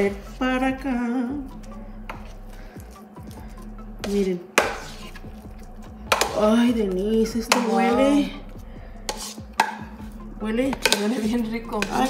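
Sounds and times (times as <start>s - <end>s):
mashed potatoes squishing: 1.4s - 6.6s, 7.4s - 12.0s
metal utensil tapping bowl: 6.1s - 6.5s, 7.4s - 8.0s, 9.1s - 10.0s, 10.7s - 12.0s.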